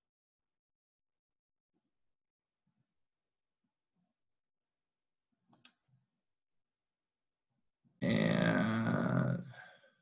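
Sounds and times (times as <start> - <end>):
mouse clicks: 5.5 - 5.8
man grunting: 8.0 - 9.6.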